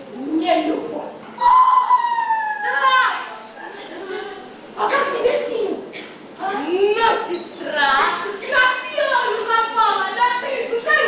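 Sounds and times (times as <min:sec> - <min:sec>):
woman crying out: 0:01.4 - 0:03.1
woman screaming: 0:01.4 - 0:03.4.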